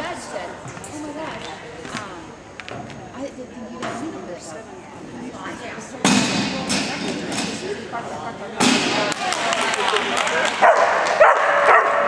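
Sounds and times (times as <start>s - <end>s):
arena noise and voices: 0.0s - 12.0s
dog barking: 10.6s - 12.0s.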